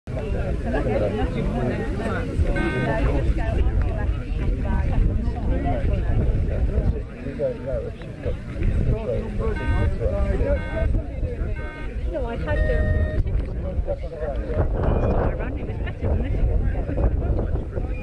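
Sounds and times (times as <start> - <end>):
people chattering: 0.1 - 18.0.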